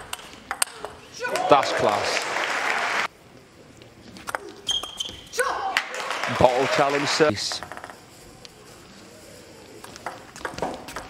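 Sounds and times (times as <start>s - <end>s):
short high squeak: 4.6s - 5.3s.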